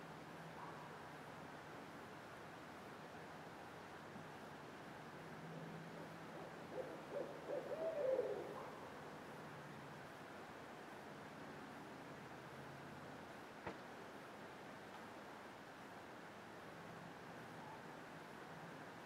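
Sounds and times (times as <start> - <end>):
owl hooting: 6.4 - 8.8.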